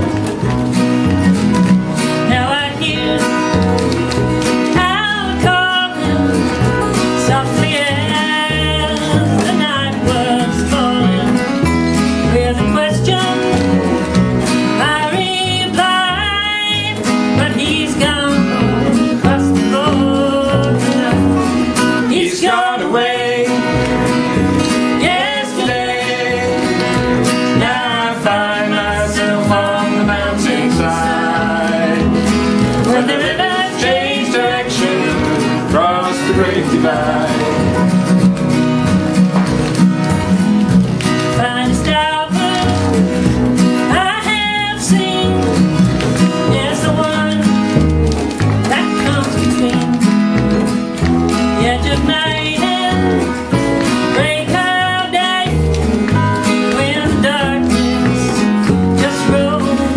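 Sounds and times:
acoustic guitar: 0:00.0 - 0:59.9
double bass low notes: 0:00.0 - 0:59.9
woman singing folk song: 0:02.0 - 0:37.9, 0:41.0 - 0:59.9.

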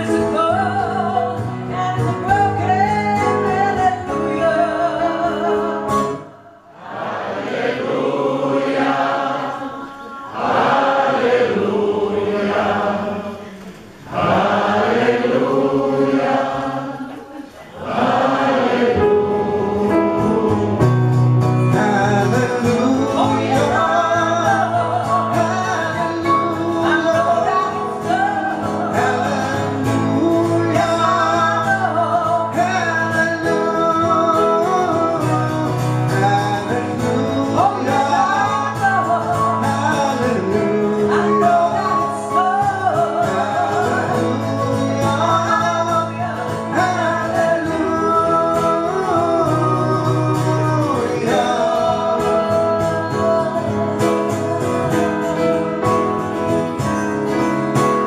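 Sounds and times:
woman and man singing: 0:00.0 - 0:06.2, 0:08.4 - 0:21.0, 0:21.6 - 0:55.7
acoustic guitar chords: 0:00.0 - 0:58.0.

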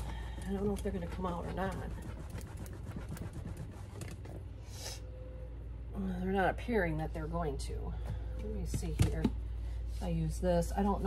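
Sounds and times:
cloth scrubbing leather: 0:00.0 - 0:04.3
low room hum: 0:00.0 - 0:11.0.

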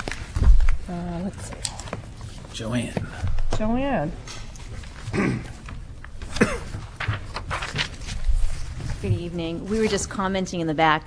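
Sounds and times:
throat clearing: 0:05.1 - 0:05.6, 0:06.2 - 0:06.8.

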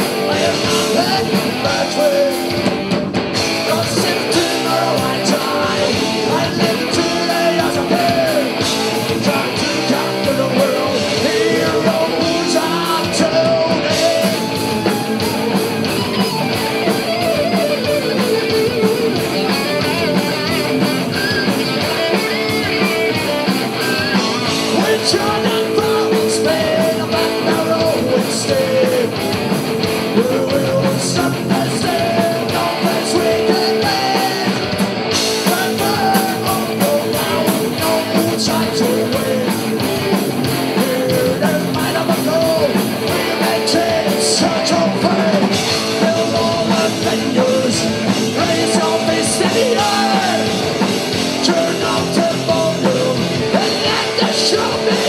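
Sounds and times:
drum kit beat: 0:00.0 - 0:55.0
electric guitars: 0:00.0 - 0:55.0
rock band playing loud: 0:00.0 - 0:55.0.

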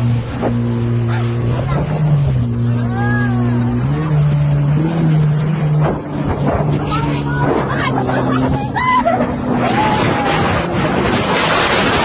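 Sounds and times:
motorboat engine droning: 0:00.0 - 0:12.0
person crying out: 0:07.8 - 0:09.9.

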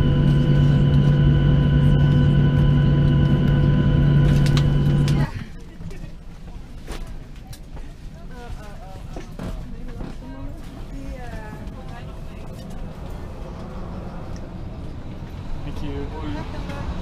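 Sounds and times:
steady low rumble: 0:00.0 - 0:08.8
passengers chattering: 0:00.0 - 0:17.0.

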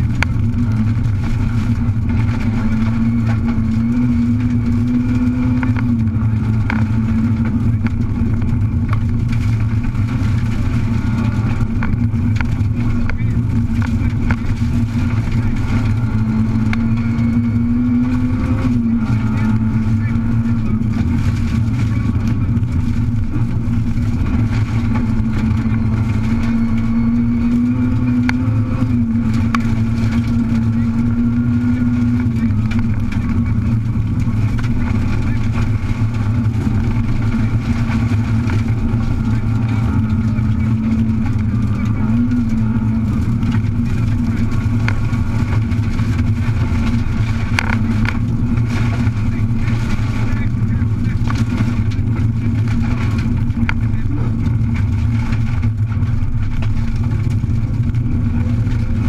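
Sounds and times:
car engine running hard: 0:00.0 - 0:59.0
tyres on gravel: 0:00.0 - 0:59.0.

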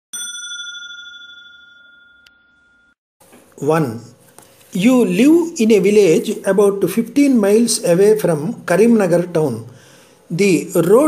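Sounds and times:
bell ding ringing: 0:00.1 - 0:03.0.

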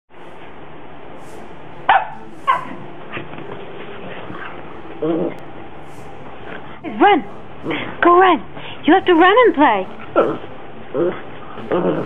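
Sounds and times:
small dog barking: 0:01.9 - 0:02.7.

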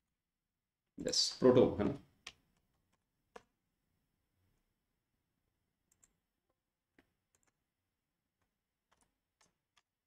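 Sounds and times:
keyboard keys typing: 0:05.9 - 0:06.2, 0:06.9 - 0:07.7, 0:08.4 - 0:10.0.

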